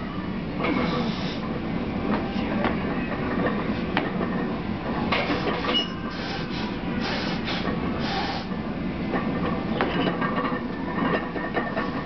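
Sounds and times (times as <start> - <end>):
hissing breath: 0.8 - 1.4, 5.3 - 8.5.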